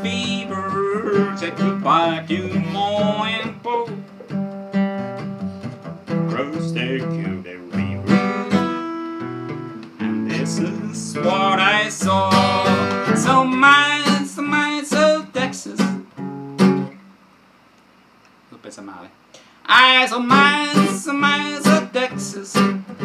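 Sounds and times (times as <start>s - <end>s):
acoustic guitar strumming chords: 0.0s - 17.2s, 19.7s - 23.0s.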